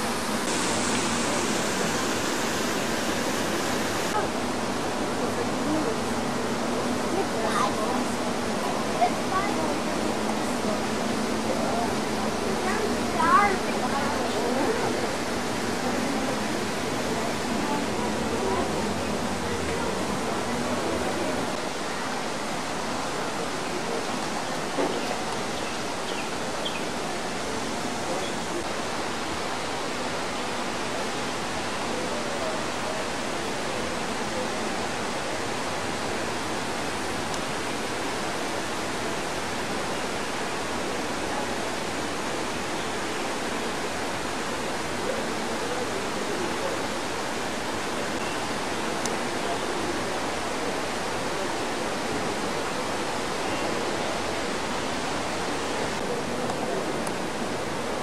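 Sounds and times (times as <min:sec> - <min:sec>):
faint voices: 0:00.0 - 0:58.0
rushing water noise: 0:00.0 - 0:58.0.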